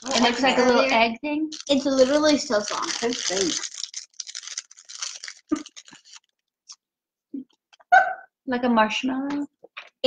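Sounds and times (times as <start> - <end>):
snacks crackling and crunching: 1.5 - 6.8.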